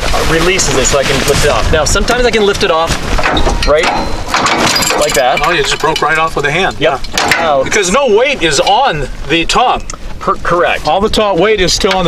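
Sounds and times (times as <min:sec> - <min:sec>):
man talking: 0:00.0 - 0:03.0, 0:03.6 - 0:04.1, 0:04.8 - 0:12.0
metal clanking and rattling: 0:03.1 - 0:07.8.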